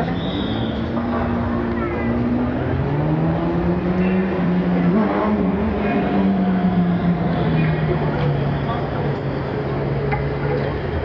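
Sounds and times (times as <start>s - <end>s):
noisy background: 0.0s - 11.0s.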